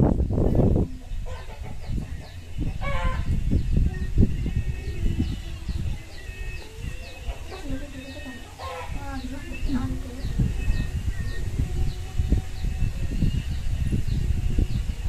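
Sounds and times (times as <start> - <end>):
chickens cheeping: 0.0 - 15.0.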